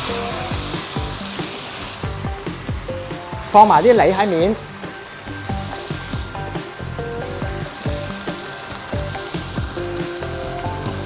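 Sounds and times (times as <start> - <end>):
meat sizzling in a frying pan: 0.0 - 11.0
music of plucked notes: 0.0 - 11.0.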